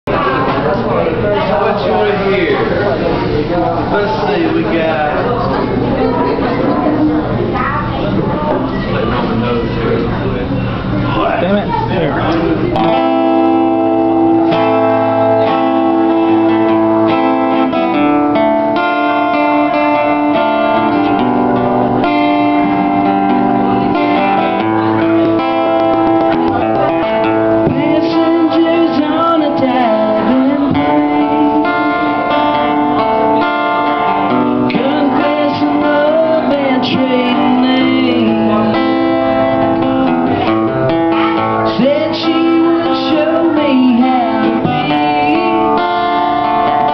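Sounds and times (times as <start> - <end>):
acoustic guitar strummed chords: 0.1 - 46.9
person singing: 27.6 - 40.5, 41.6 - 46.9.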